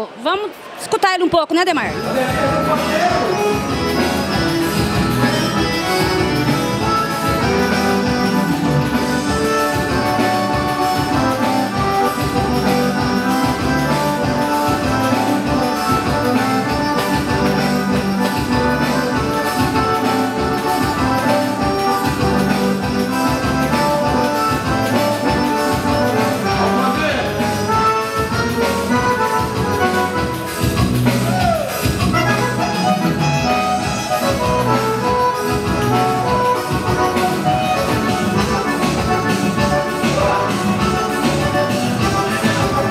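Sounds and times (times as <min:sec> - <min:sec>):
percussion dance rhythm: 0:00.2 - 0:42.9
bass line: 0:01.8 - 0:42.9
piano accordion: 0:01.9 - 0:42.9.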